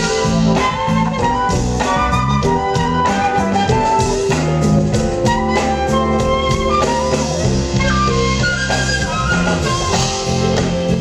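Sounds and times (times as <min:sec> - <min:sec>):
bass: 0:00.0 - 0:11.0
drum kit: 0:00.0 - 0:11.0
flute playing melody: 0:00.0 - 0:11.0.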